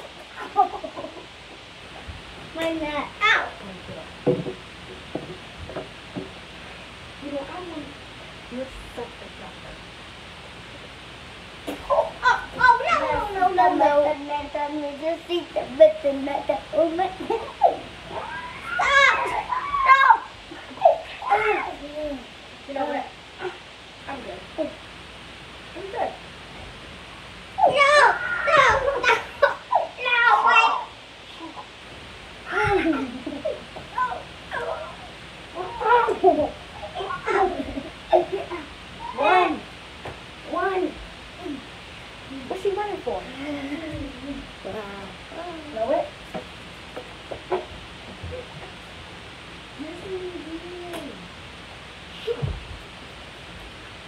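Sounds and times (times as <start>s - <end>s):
child crying high-pitched: 18.1s - 20.3s, 27.6s - 29.2s.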